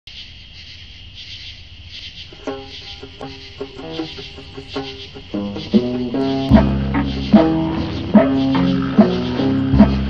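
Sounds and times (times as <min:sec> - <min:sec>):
crickets chirring: 0:00.1 - 0:10.0
low rumble: 0:04.2 - 0:10.0.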